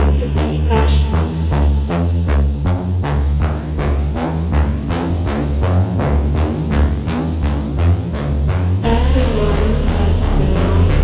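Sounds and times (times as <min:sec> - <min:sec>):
techno music: 0:00.0 - 0:11.0.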